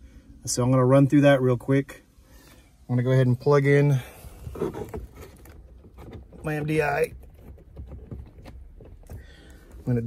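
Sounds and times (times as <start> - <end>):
rustling handling noise: 3.4 - 10.0.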